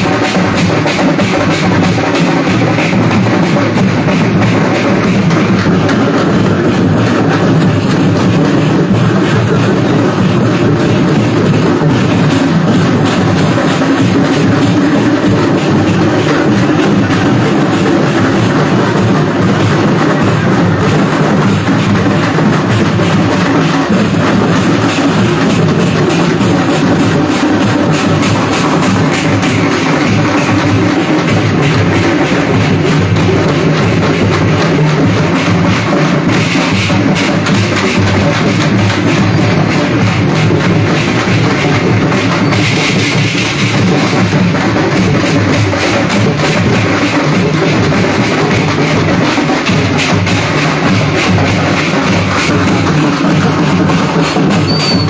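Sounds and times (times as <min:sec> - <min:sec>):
procession music with drums: 0:00.0 - 0:55.0.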